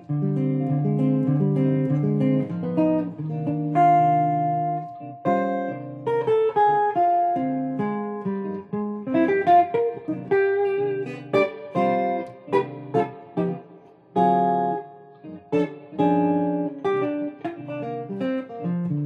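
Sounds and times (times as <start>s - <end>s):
clean electric guitar jazz line: 0.0s - 19.0s.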